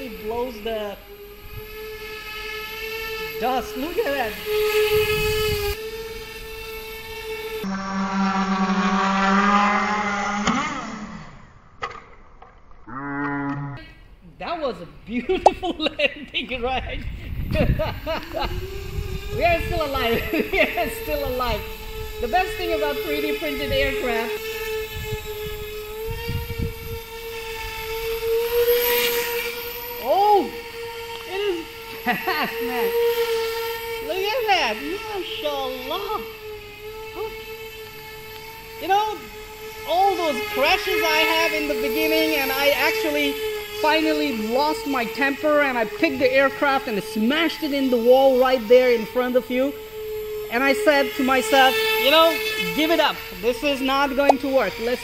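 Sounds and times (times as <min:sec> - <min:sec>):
drone propellers whirring: 0:00.0 - 0:13.9, 0:16.0 - 0:55.0.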